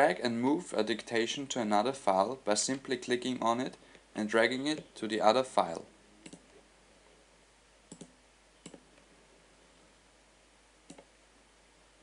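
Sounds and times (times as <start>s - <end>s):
faint computer mouse clicks: 6.2s - 6.4s, 7.9s - 8.8s, 10.9s - 11.1s.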